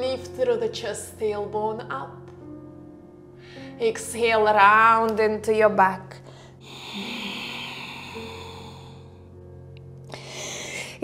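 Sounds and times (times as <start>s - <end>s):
woman exhaling: 6.6s - 9.1s.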